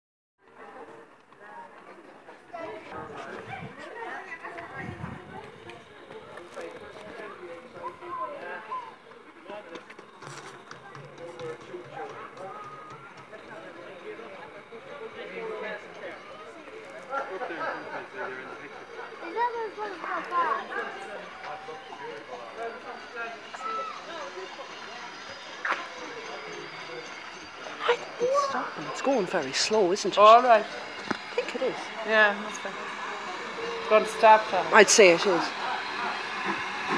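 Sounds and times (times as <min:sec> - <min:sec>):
indistinct chatter: 0:00.4 - 0:36.9
people talking: 0:00.5 - 0:36.9.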